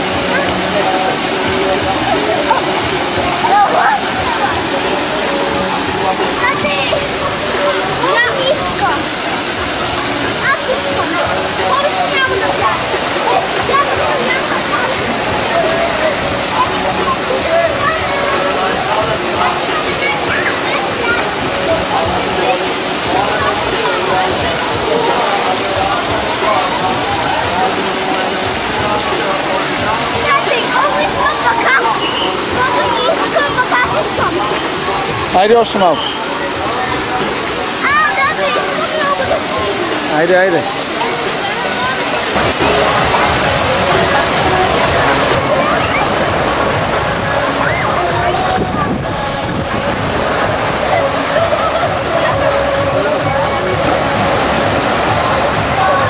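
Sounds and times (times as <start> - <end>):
crowd voices and shouts: 0.0 - 56.0
rush of falling water: 0.0 - 56.0.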